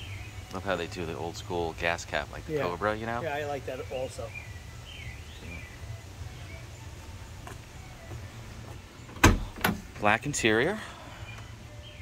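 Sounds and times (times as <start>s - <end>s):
car door latch clacks: 9.1s - 9.9s.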